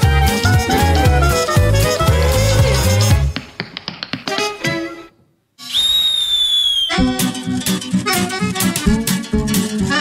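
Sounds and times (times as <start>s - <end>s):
shrill whistle blast: 5.6s - 7.1s.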